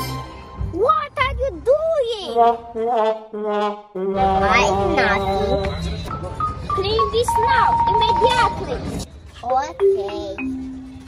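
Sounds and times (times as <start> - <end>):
sad trombone notes: 2.4 - 5.8.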